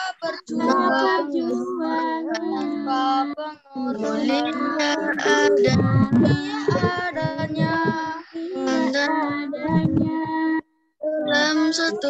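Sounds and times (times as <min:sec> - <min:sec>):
woman and children singing: 0:00.0 - 0:12.0.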